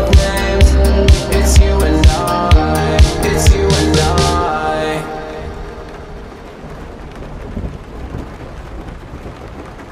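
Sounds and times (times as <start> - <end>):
song's last chord: 0.0 - 6.6
crackling rushing noise: 0.0 - 9.9.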